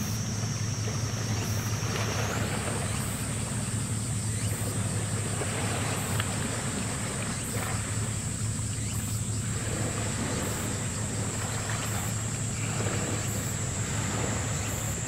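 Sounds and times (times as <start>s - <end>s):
high-pitched whine: 0.0s - 6.2s
low rumble across water: 0.0s - 15.0s.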